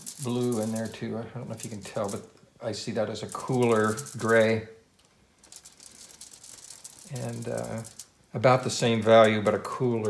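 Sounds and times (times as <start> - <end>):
paintbrush scratching on foil: 5.5 - 8.2.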